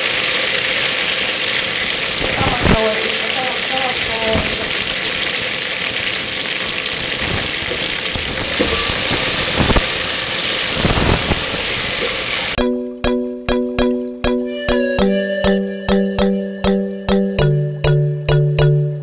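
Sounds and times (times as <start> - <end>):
sauce sizzling in a pot: 0.0 - 12.6
plucked melody background music: 12.6 - 19.0.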